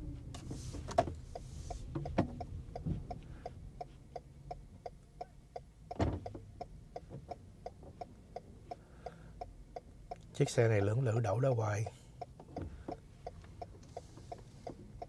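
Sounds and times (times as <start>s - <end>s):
low hum of car cabin: 0.0s - 15.0s.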